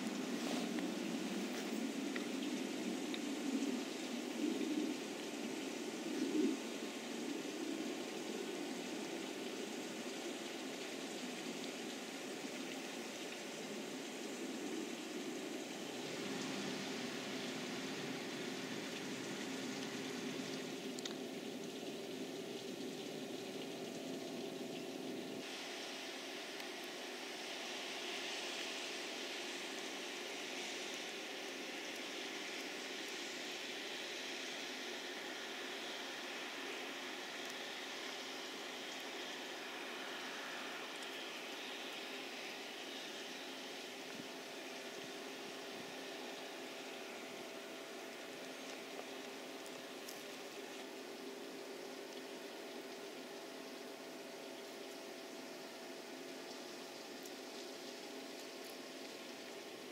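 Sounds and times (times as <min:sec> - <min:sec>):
outdoor background hiss: 0:00.0 - 0:59.9.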